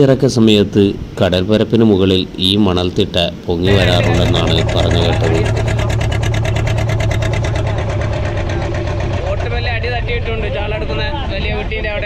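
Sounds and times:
boat engine humming: 2.1 - 12.0
rapid regular ticking: 3.7 - 11.2.

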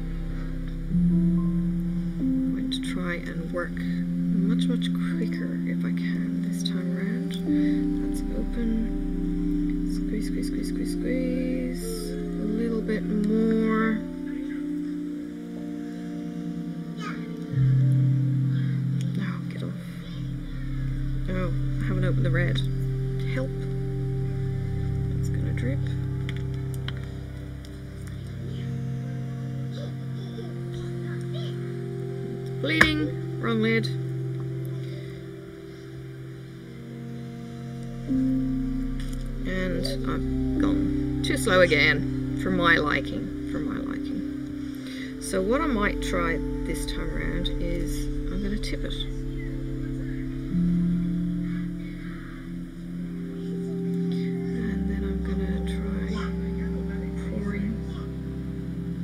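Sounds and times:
music of long held notes: 0.0 - 59.0.

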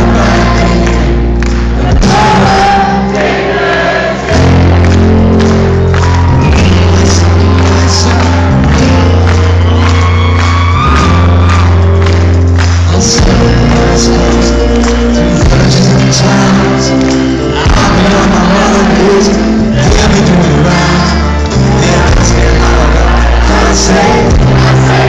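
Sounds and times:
male lead singer: 0.0 - 5.6, 6.2 - 11.6, 12.6 - 25.0
bass: 0.0 - 25.0
rock band playing live: 0.0 - 25.0.

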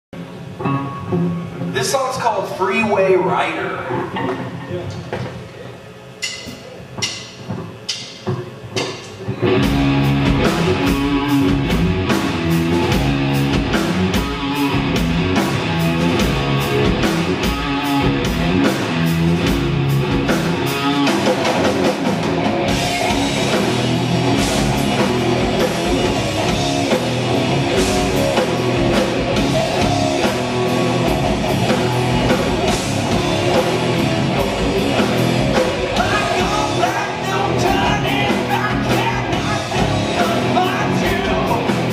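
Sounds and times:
hard rock band playing: 0.2 - 4.6, 8.7 - 41.9.

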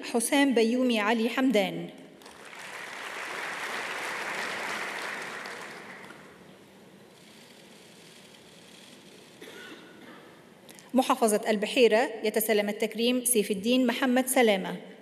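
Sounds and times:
faint hall noise: 1.6 - 12.3
audience applauding: 2.2 - 6.4.

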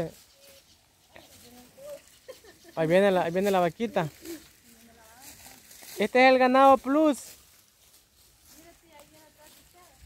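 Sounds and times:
man's voice: 2.8 - 4.3, 5.8 - 7.4.

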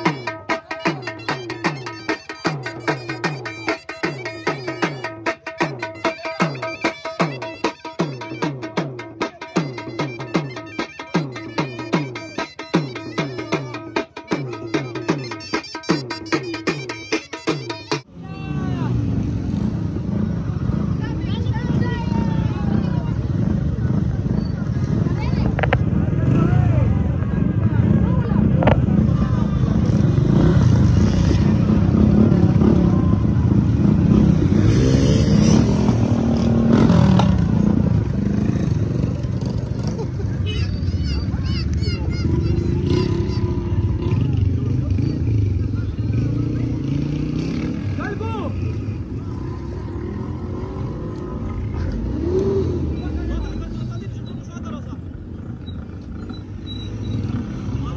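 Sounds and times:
men chattering: 0.0 - 19.2, 35.4 - 56.2
small motorcycle engines running: 18.6 - 57.9.

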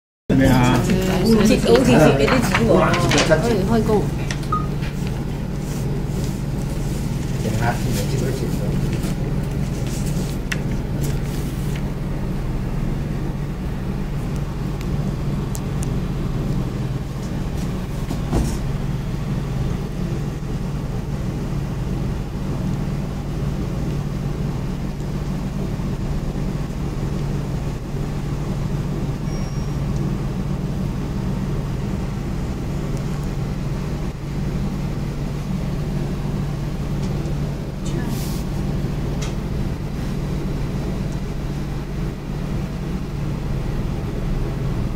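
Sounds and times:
low background hum: 0.3 - 44.9.

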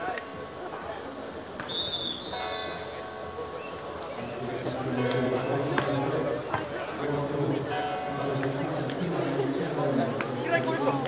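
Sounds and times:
voices: 0.0 - 11.0
referee's whistle blast: 1.7 - 2.8.

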